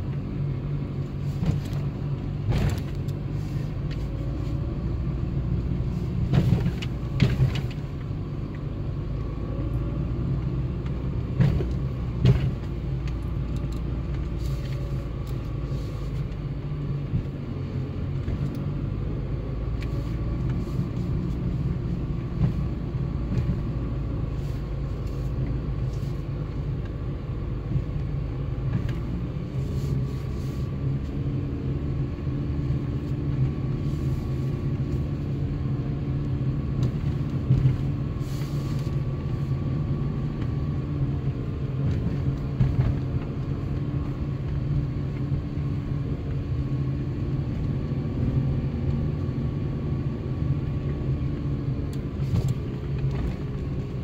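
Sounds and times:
car engine and tyres hum: 0.0 - 54.0.

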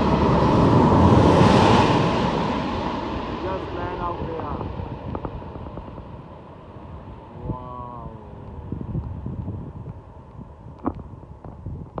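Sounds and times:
jet airliner engine rumble: 0.0 - 12.0
wind on microphone: 0.0 - 12.0.

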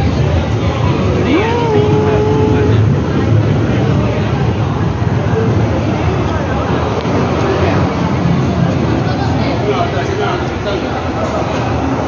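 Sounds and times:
crowd voices: 0.0 - 12.0
tram car low rumble: 0.0 - 12.0.

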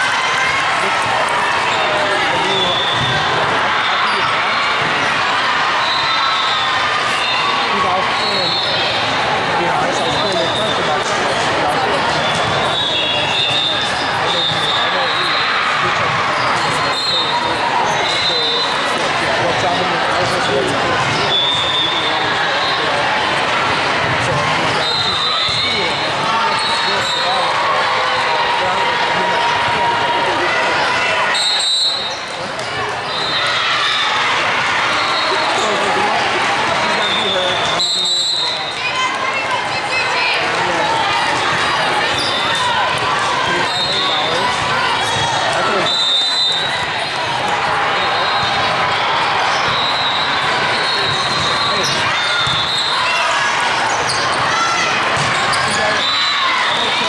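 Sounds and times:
many voices: 0.0 - 57.0
volleyballs hit and bouncing: 50.5 - 52.8, 53.5 - 56.0.

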